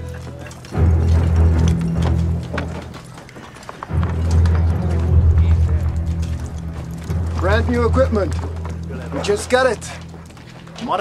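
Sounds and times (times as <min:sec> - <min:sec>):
low music drone: 0:00.6 - 0:03.2, 0:03.8 - 0:11.0.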